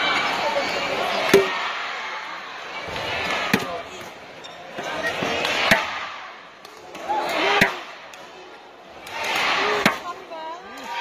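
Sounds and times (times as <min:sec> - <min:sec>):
crowd chatter and calls: 0:00.0 - 0:11.0.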